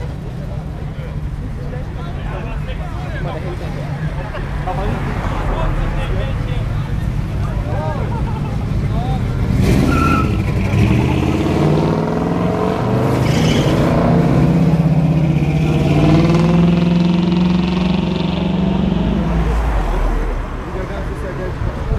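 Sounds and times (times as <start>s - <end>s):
car engines under throttle: 0.0s - 21.9s.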